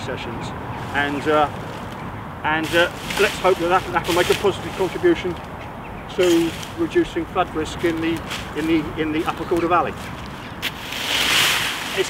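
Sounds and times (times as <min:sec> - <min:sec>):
rake dragged through dry stalks: 0:00.8 - 0:05.4, 0:06.1 - 0:12.0.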